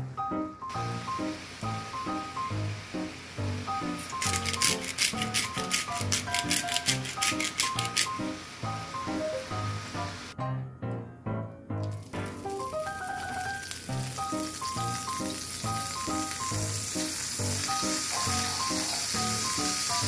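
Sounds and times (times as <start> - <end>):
seasoning shaker rattling: 3.8 - 8.5, 12.0 - 20.0.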